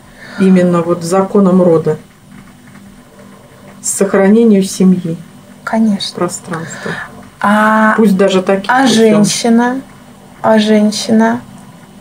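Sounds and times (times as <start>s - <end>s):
faint steady hum: 0.0s - 12.0s
woman speaking: 0.2s - 2.0s, 3.8s - 11.5s.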